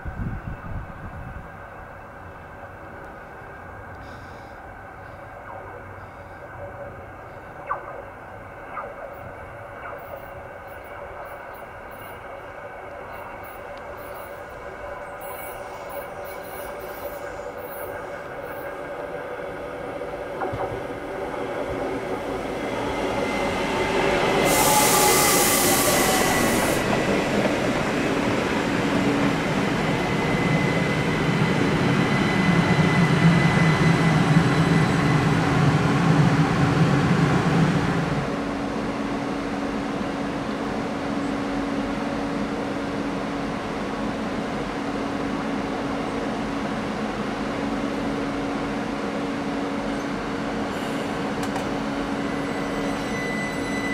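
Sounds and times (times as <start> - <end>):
electric train arriving: 0.0 - 53.9
high squeal: 22.8 - 26.9, 52.2 - 53.9.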